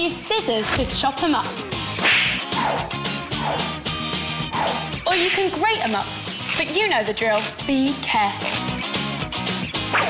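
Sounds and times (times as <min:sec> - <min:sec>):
background music with bass: 0:00.0 - 0:10.0
whip-like swish: 0:02.0 - 0:03.7, 0:04.5 - 0:05.6.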